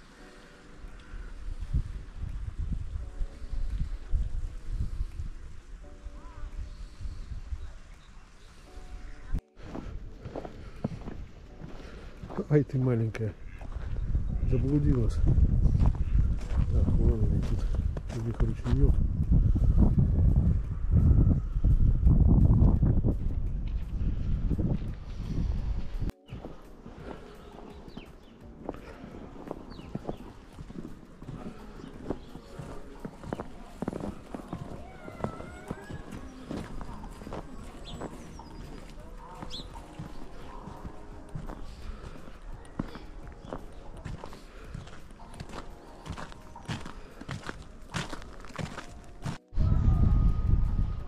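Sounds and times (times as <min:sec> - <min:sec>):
wind rumble on microphone: 0:00.9 - 0:12.0, 0:13.4 - 0:26.2, 0:39.4 - 0:51.0
footsteps crunching on snow: 0:09.5 - 0:19.0, 0:23.6 - 0:49.5.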